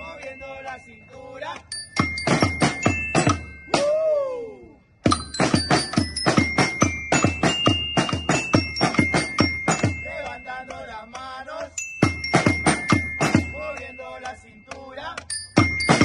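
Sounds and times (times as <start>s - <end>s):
high held melody: 0.0s - 16.0s
marching snare drums: 5.1s - 10.4s, 12.0s - 13.9s, 15.6s - 16.0s.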